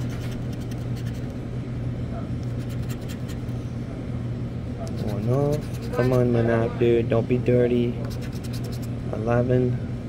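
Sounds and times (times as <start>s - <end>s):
scraping of scratch-off ticket: 2.5s - 3.4s, 4.9s - 6.3s, 8.1s - 8.9s.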